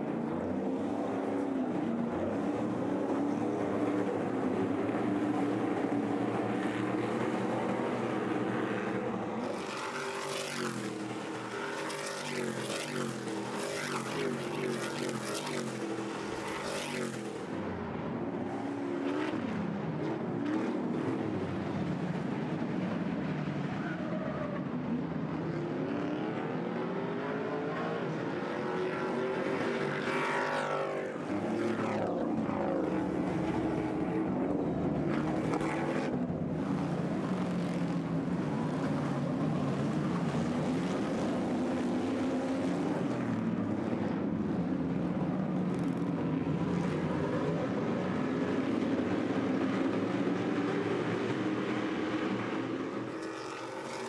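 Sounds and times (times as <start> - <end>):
race truck engines revving: 0.0 - 54.0.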